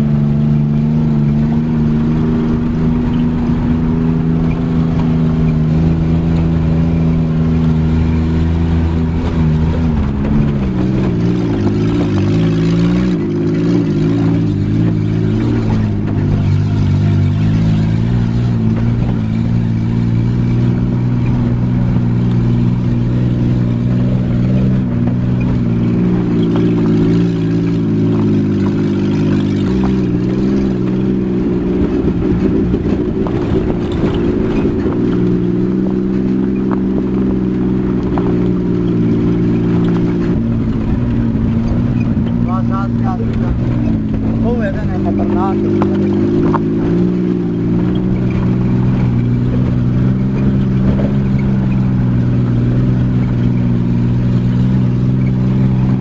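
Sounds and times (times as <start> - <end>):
driving on gravel road: 0.0 - 56.0
vehicle engine under load: 0.0 - 56.0.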